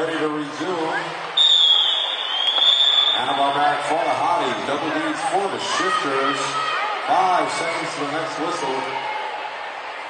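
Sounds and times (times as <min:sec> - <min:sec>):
referee's whistle long blast: 0:01.4 - 0:03.6.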